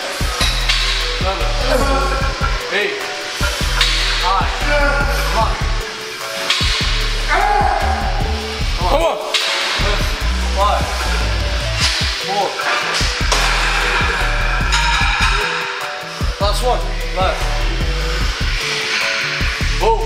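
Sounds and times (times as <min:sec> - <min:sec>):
music with heavy bass line: 0:00.1 - 0:02.7, 0:03.4 - 0:09.0, 0:09.8 - 0:12.3, 0:13.0 - 0:18.7, 0:19.4 - 0:20.0.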